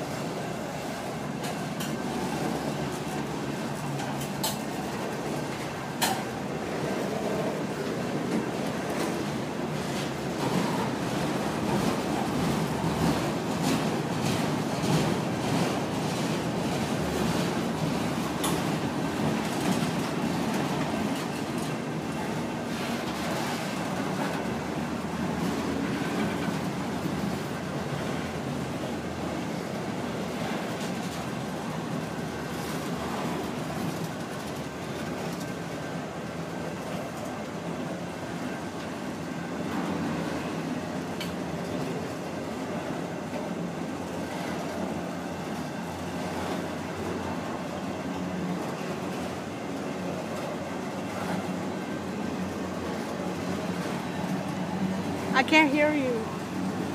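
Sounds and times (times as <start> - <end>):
train wheels rumbling on rails: 0.0 - 56.9
wheels clicking over rail joints: 2.9 - 6.4.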